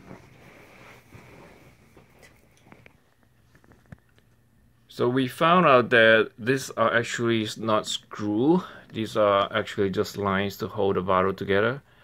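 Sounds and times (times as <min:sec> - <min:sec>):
plastic handling noise: 0:01.9 - 0:04.4.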